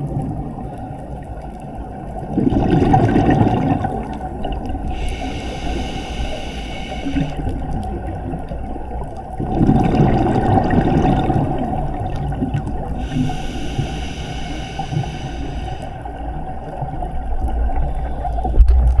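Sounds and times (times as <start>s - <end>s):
exhaled bubbles gurgling: 0.0s - 19.0s
low water rumble: 0.0s - 19.0s
diver breathing through regulator: 4.8s - 7.4s, 12.8s - 16.3s.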